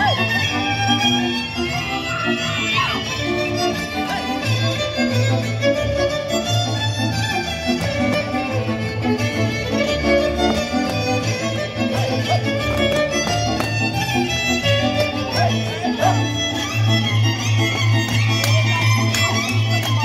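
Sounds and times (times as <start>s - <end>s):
bowed bass line: 0.0s - 20.0s
fiddle melody: 0.0s - 20.0s.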